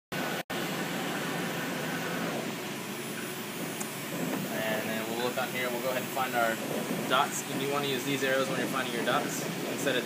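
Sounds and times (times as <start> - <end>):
vacuum blower rushing hum: 0.2 - 10.0.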